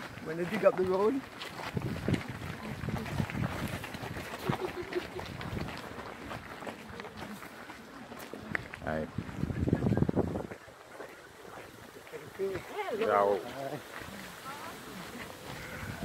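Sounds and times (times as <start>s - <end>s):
footsteps on gritty road: 0.0s - 16.0s
people chatting: 12.1s - 16.0s.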